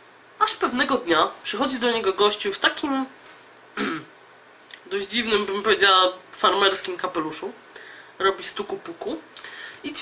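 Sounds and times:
woman speaking: 0:00.4 - 0:03.2, 0:04.8 - 0:07.6, 0:08.2 - 0:10.0
woman clearing throat: 0:03.8 - 0:04.1.

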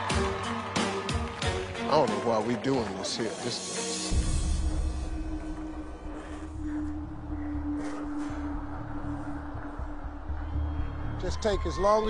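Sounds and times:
low pulsing suspense music: 0:03.9 - 0:12.0.

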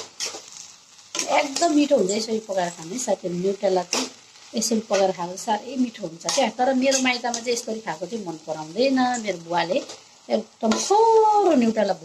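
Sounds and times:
metal spatula scraping wok: 0:00.0 - 0:11.0.

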